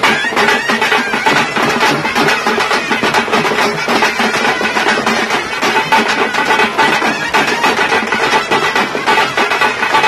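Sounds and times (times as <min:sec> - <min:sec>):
horn melody: 0:00.0 - 0:10.0
stick-beaten drums: 0:00.0 - 0:10.0.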